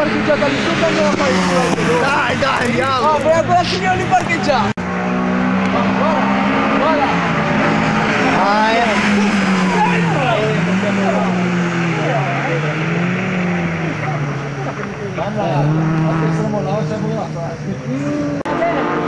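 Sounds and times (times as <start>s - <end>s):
race car engines: 0.0s - 19.0s.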